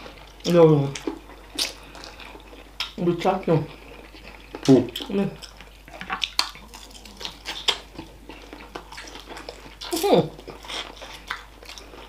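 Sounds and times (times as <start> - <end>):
mouth smacks and chewing clicks: 4.1 - 12.0.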